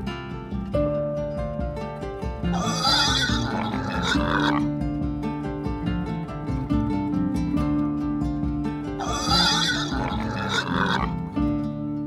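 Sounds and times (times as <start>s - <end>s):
background music: 0.0s - 12.0s
harsh wavering animal call: 2.5s - 4.6s, 9.0s - 11.2s.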